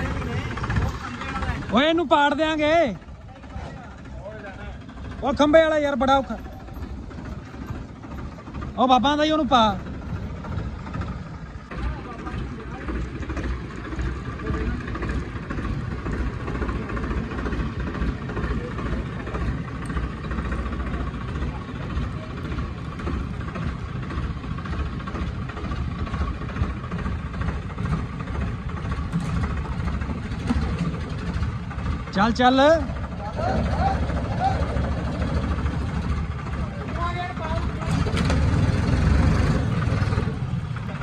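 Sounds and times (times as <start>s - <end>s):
tractor diesel engine under load: 0.0s - 41.0s.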